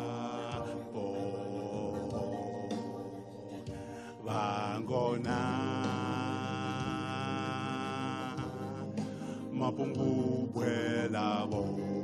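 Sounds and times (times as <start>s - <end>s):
electric guitar playing: 0.0s - 12.0s
man singing: 0.0s - 12.0s.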